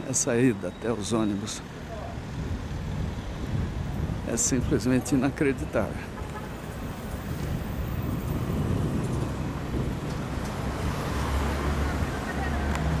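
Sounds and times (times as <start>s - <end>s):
road traffic rumble: 0.0s - 13.0s.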